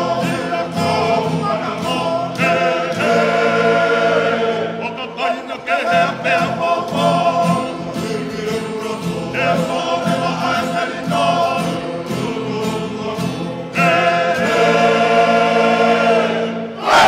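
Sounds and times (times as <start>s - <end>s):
choir singing in harmony: 0.0s - 17.0s.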